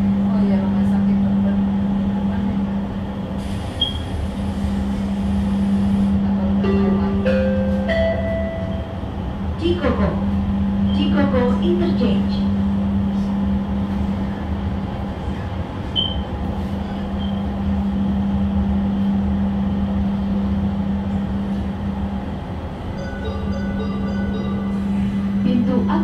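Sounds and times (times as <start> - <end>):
train running rumble: 0.0 - 26.0.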